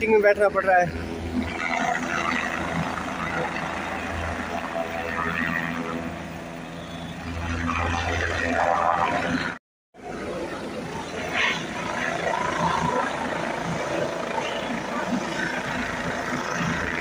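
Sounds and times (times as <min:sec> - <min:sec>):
helicopter engine and rotor hum: 0:00.0 - 0:17.0.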